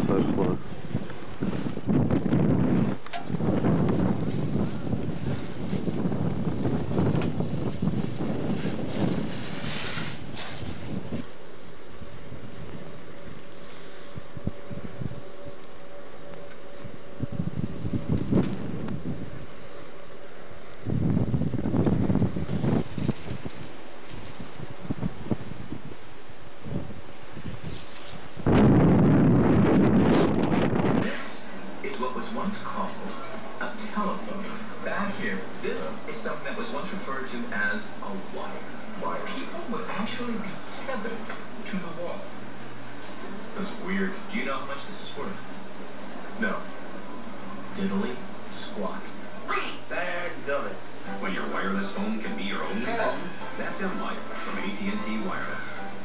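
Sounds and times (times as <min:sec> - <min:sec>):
gusty wind on microphone: 0:00.0 - 0:37.0.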